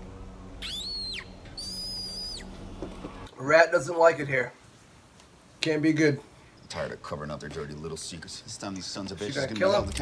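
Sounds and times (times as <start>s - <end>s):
low steady hum: 0.0s - 5.6s
rat squeaking: 0.6s - 2.5s.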